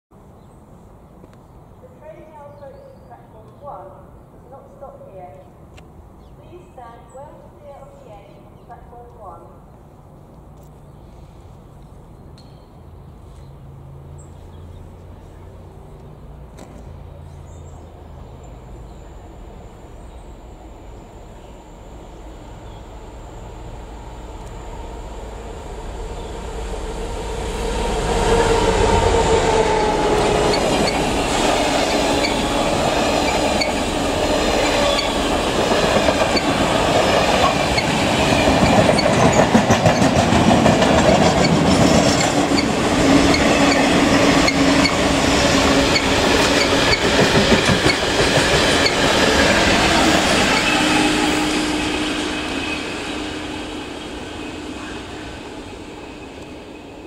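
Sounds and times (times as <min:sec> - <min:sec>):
freight train passing: 0:00.2 - 0:57.0
wheels clicking over rail joints: 0:30.2 - 0:31.2, 0:34.6 - 0:50.7.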